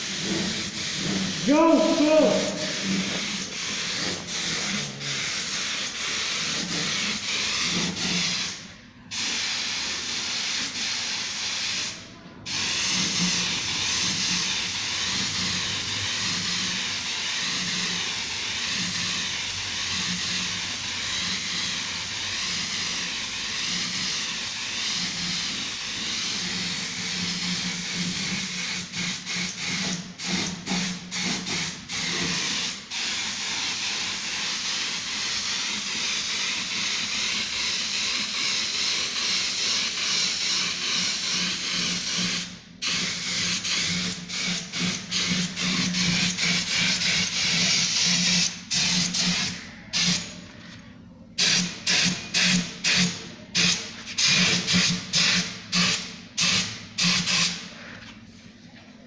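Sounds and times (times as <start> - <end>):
spray gun hissing: 0.0 - 50.2.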